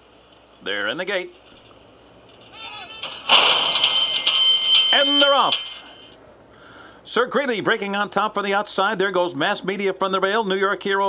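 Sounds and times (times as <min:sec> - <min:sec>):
starting gate crashing open: 0:02.5 - 0:06.1
starting gate bell ringing: 0:02.5 - 0:06.2.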